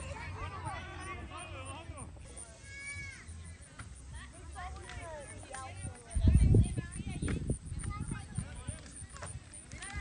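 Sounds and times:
players shouting and calling: 0:00.0 - 0:06.2.

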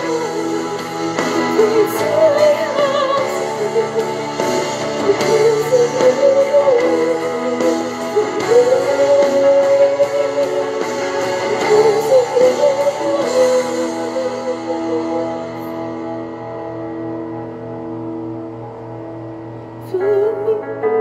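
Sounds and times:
woman singing worship song: 0:00.0 - 0:16.2, 0:19.8 - 0:21.0
guitar backing track: 0:00.0 - 0:19.9.

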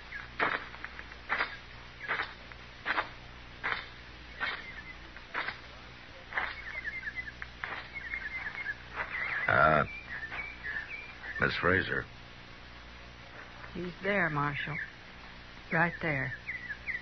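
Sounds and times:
slow footsteps: 0:00.0 - 0:11.2, 0:13.2 - 0:13.9
birds chirping: 0:00.0 - 0:17.0.

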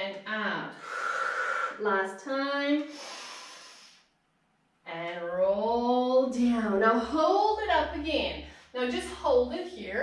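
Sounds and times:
woman breathing in: 0:02.9 - 0:04.1.

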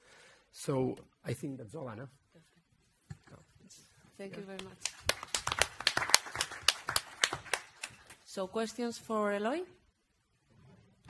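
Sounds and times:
audience applause: 0:04.6 - 0:08.2.

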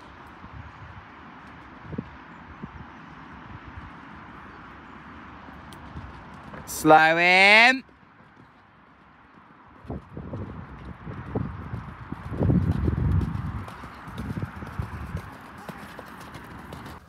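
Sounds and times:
horse hooves thudding on grass: 0:00.0 - 0:06.7, 0:07.9 - 0:17.0.

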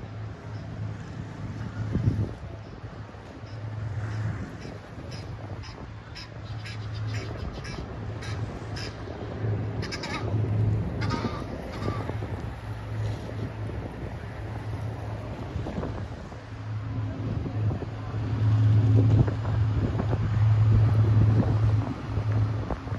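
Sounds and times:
wind on microphone: 0:00.0 - 0:22.9
gulls calling: 0:03.4 - 0:12.8.

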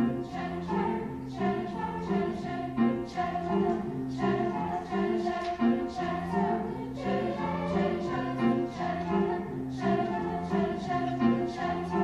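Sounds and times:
grand piano: 0:00.0 - 0:12.0
youth choir singing in harmony: 0:00.0 - 0:12.0.

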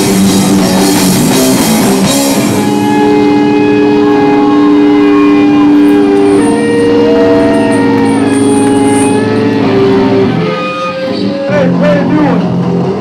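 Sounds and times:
distorted electric guitars chord: 0:00.0 - 0:13.0
guitar feedback tones: 0:00.0 - 0:13.0.

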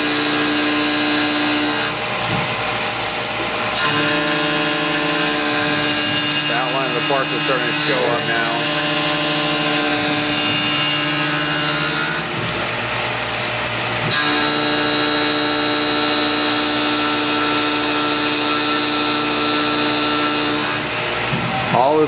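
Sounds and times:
milling machine cutting metal: 0:00.0 - 0:22.0.

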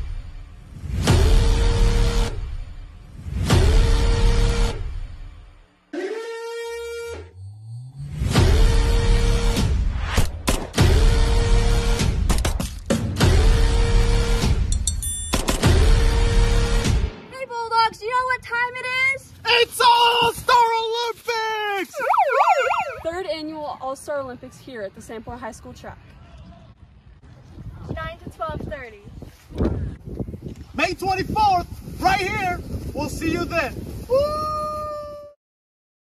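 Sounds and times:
horn-like blast: 0:01.0 - 0:02.7, 0:03.5 - 0:05.1, 0:06.0 - 0:09.9
person shouting: 0:06.0 - 0:06.7
megaphone siren warbling: 0:21.9 - 0:23.4.

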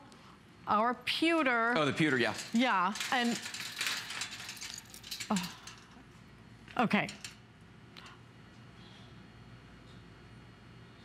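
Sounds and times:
wire rack clicking and rattling: 0:02.0 - 0:06.0, 0:07.0 - 0:07.4.

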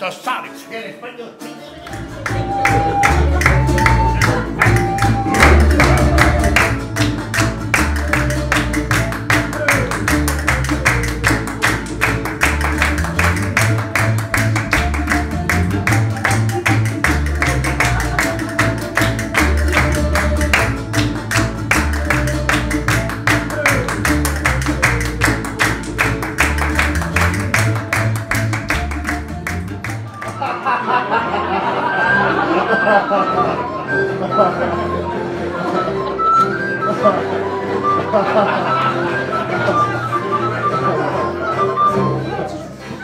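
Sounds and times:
plucked strings dance tune: 0:00.0 - 0:43.0
low bass line: 0:01.8 - 0:30.2
sharp percussive beat: 0:01.9 - 0:30.2.

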